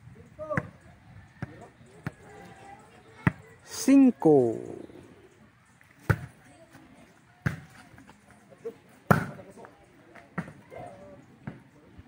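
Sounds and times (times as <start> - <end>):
volleyball being hit: 9.1 - 9.4.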